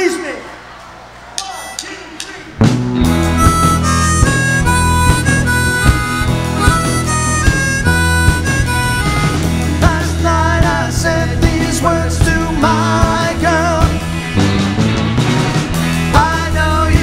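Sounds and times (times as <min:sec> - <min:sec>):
live rock band playing: 0:02.5 - 0:17.0.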